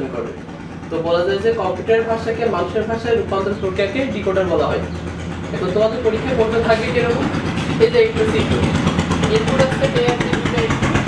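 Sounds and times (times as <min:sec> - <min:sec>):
man speaking: 0:00.0 - 0:04.9, 0:05.5 - 0:11.0
engine-like rumble: 0:00.0 - 0:11.0.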